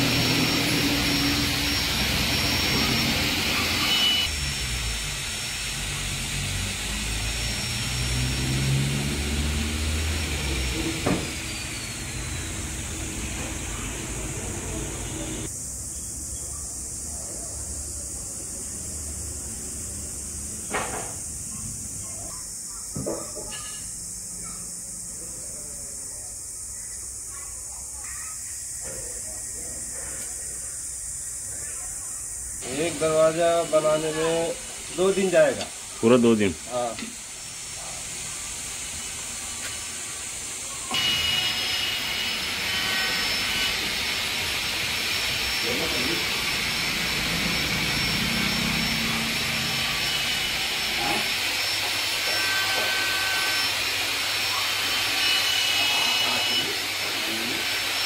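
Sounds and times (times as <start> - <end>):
machine whirring hiss: 0.0 - 58.0
faint distant voices: 13.3 - 38.6
steady high hiss: 23.8 - 52.2.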